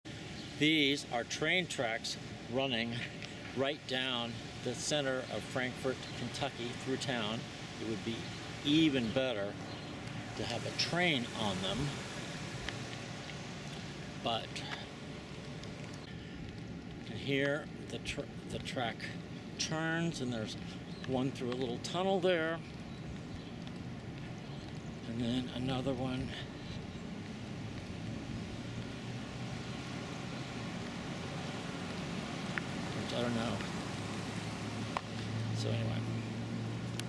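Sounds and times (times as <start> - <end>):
street background hiss: 0.1 - 37.0
light ticks: 12.6 - 13.9, 22.6 - 24.9, 31.9 - 33.8, 34.9 - 35.8.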